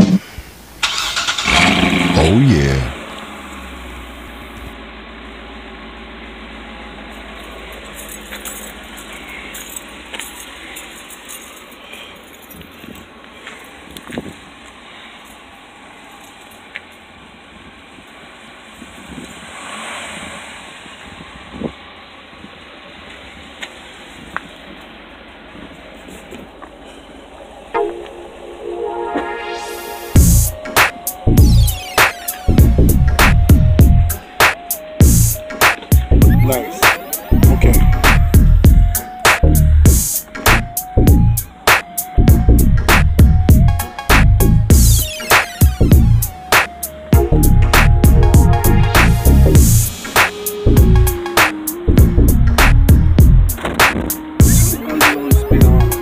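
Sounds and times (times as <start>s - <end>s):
car engine idling: 0.0s - 19.6s, 20.4s - 28.4s, 30.2s - 56.0s
music: 27.8s - 56.0s.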